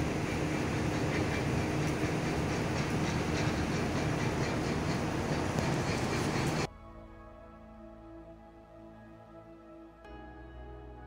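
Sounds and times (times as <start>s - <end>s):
moving train rumble: 0.0s - 6.7s
low hum: 0.0s - 11.0s.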